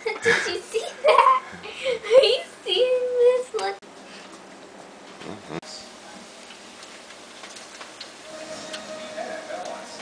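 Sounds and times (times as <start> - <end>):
bacon sizzling with crackling pops: 6.2 - 9.0
steady tone: 8.2 - 10.0.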